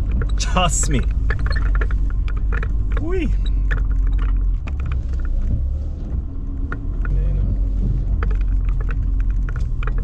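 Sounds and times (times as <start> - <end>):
engine and road rumble: 0.0 - 10.0
knocks and rattles: 0.0 - 10.0.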